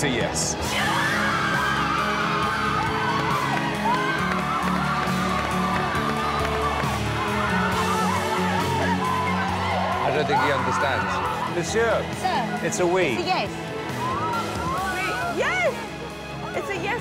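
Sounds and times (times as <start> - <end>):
background music: 0.0 - 17.0
women screaming with joy: 0.8 - 11.7.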